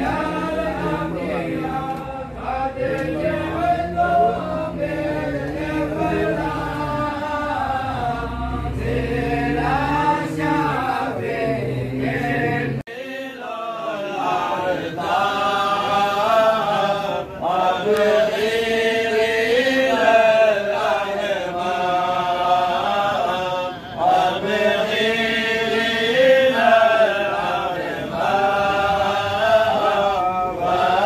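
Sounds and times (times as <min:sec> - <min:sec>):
men chanting together: 0:00.0 - 0:31.0.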